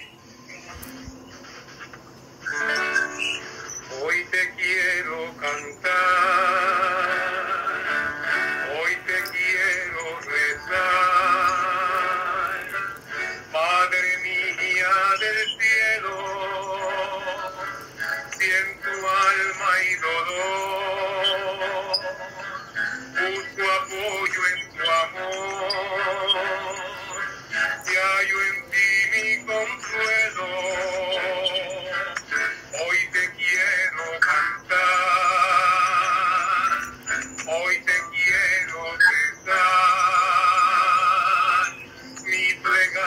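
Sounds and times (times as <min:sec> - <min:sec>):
acoustic guitar: 0:00.0 - 0:43.0
man singing a slow hymn: 0:03.9 - 0:43.0.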